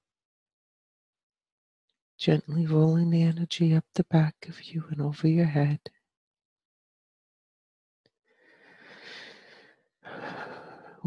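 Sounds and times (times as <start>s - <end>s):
woman speaking: 2.2s - 5.8s
woman breathing: 8.3s - 11.0s.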